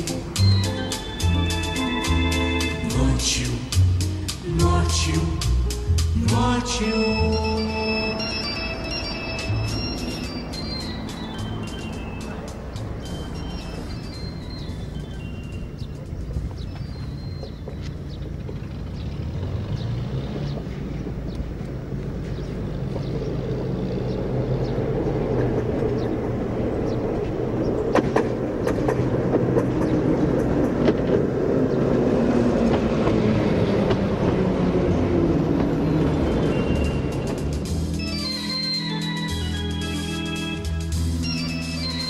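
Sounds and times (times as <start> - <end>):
tram passing rumble: 0.0 - 42.0.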